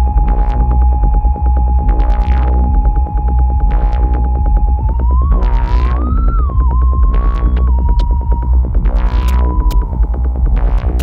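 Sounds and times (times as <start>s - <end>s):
techno music: 0.0s - 11.0s.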